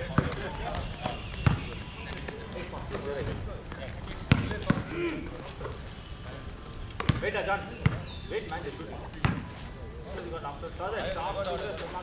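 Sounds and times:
basketball thud on concrete: 0.0s - 1.8s, 7.0s - 8.1s
players' voices calling: 0.0s - 9.6s.

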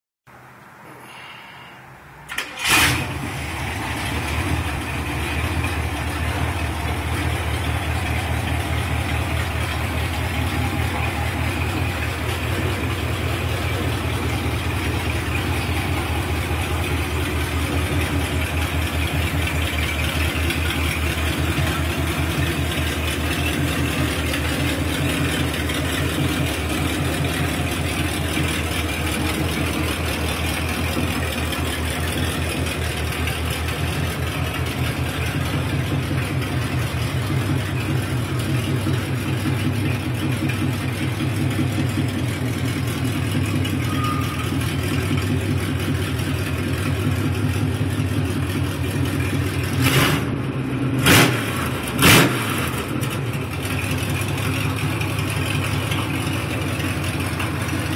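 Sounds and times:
pickup truck engine idling: 1.0s - 57.9s
engine throttle blips: 2.3s - 57.9s.

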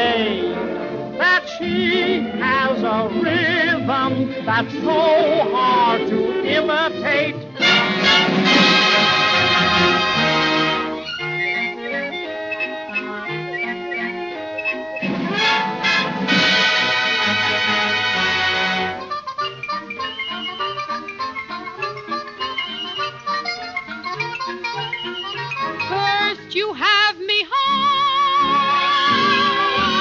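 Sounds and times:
orchestral music with brass: 0.0s - 26.4s, 28.2s - 30.0s.

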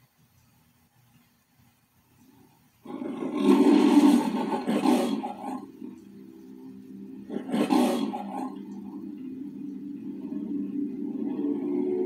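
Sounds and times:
lion roar: 2.8s - 12.0s
low steady tone: 5.7s - 7.4s, 8.3s - 12.0s.

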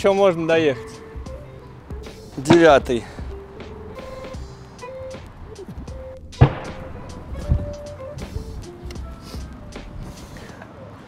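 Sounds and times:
background music held notes: 0.0s - 11.0s.

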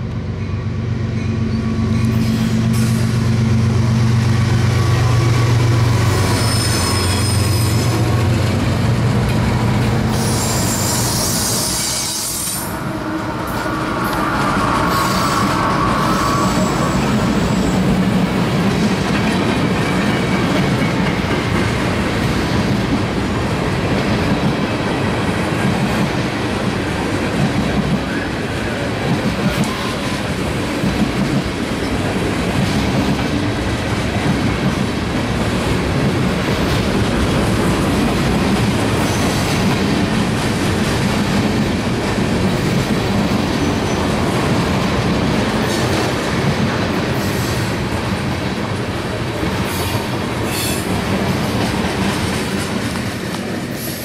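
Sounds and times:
freight train rolling past: 0.0s - 54.0s
high wheel squeals: 6.1s - 8.0s, 10.1s - 17.9s.

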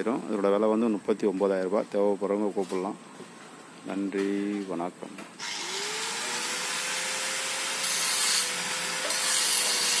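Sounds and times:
angle grinder grinding steel: 5.4s - 10.0s.

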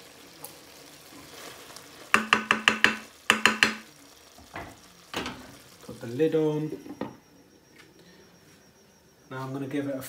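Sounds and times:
faint hiss from pan: 0.0s - 6.9s
glass lid clacking on pan: 2.2s - 3.8s.

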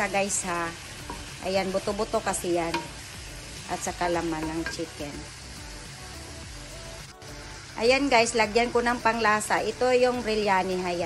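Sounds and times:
chicken sizzling in a pan: 0.0s - 11.0s.

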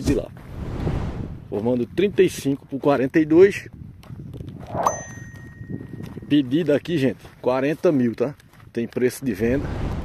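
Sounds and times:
bright bell ding: 4.7s - 6.4s.

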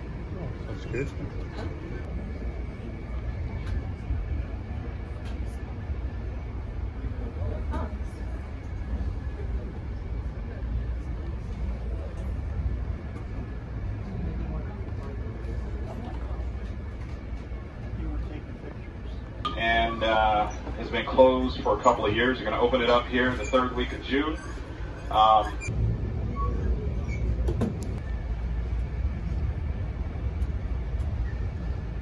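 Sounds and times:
murmur of voices: 0.0s - 25.7s
train car rumbling on rails: 0.0s - 32.0s.

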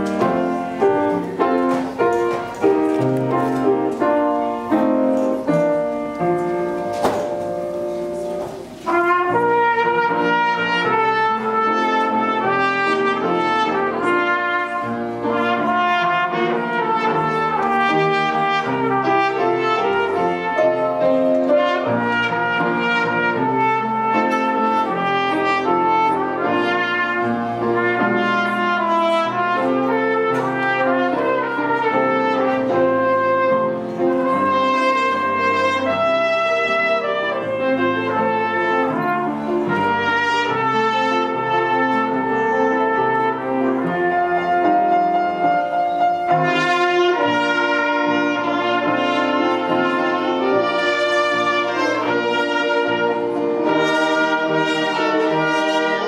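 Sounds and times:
brass ensemble playing chords: 8.7s - 56.0s.

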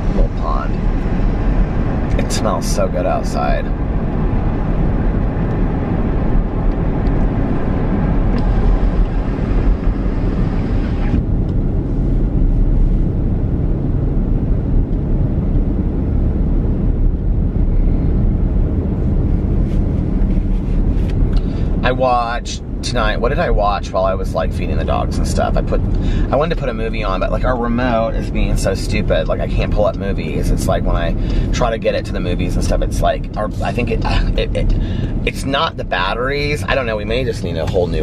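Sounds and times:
car engine hum: 0.0s - 38.0s
road and tyre rumble: 0.0s - 38.0s.

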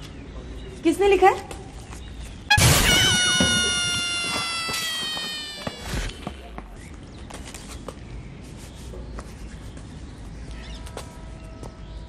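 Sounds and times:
falling high squeal: 2.5s - 6.6s.

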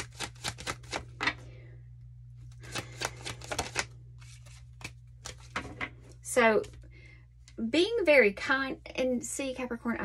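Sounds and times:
cards shuffling: 0.0s - 1.4s, 2.4s - 6.8s.

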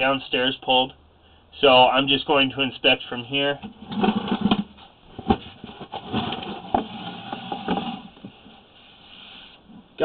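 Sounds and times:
low cable rustle: 3.6s - 9.8s.

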